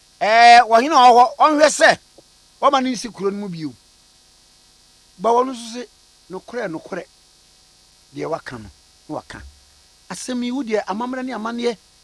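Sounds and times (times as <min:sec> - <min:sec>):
faint electrical hum: 0:00.0 - 0:12.0
man speaking: 0:00.2 - 0:02.0, 0:02.6 - 0:03.8, 0:05.2 - 0:07.1, 0:08.1 - 0:11.8.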